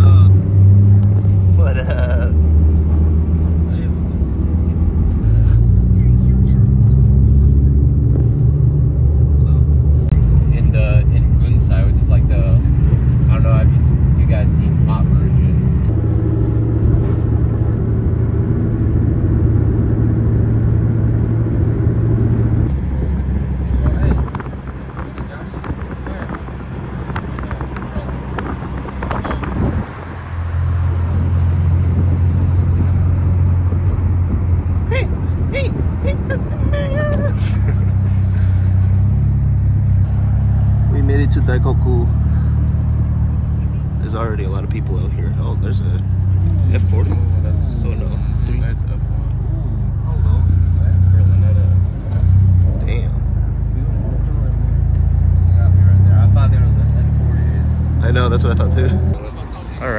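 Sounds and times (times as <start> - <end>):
car engine and road drone: 0.0 - 59.9.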